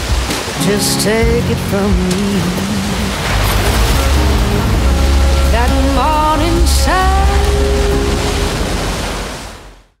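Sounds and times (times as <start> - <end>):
ocean surf rushing: 0.0 - 10.0.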